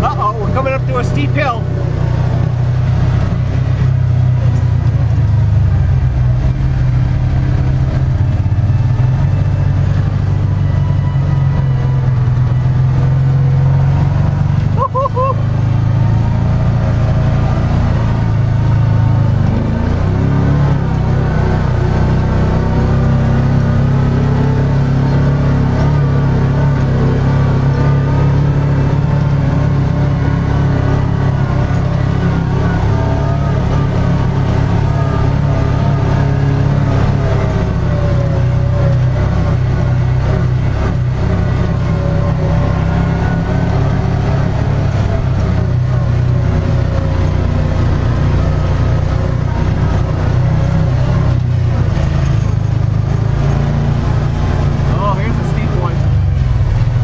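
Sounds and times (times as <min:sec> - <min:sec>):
vehicle engine running under load: 0:00.0 - 0:57.0.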